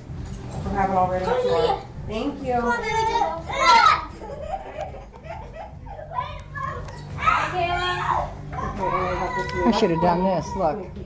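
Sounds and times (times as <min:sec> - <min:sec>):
children calling out: 0:02.8 - 0:04.7, 0:05.8 - 0:10.7
child crying out: 0:05.9 - 0:10.8.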